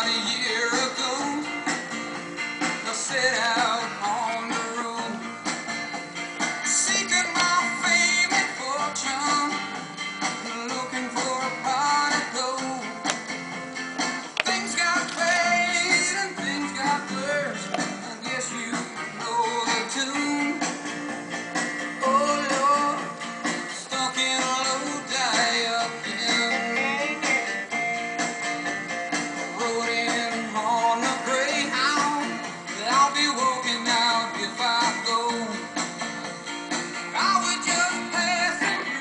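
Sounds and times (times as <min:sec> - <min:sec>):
song with singing over guitar: 0:00.0 - 0:39.0.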